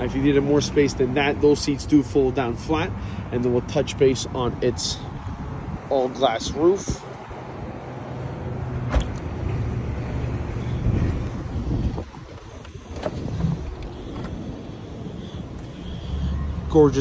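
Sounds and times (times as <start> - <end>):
outdoor background rumble: 0.0 - 17.0.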